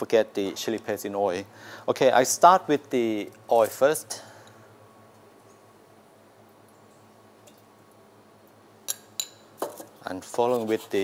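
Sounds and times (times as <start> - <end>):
kitchen background noise: 8.8 - 11.0.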